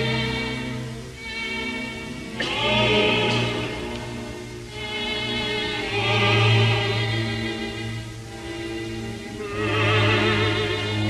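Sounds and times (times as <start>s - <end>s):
operatic singing with vibrato: 0.0s - 11.0s
sustained string chords: 0.0s - 11.0s.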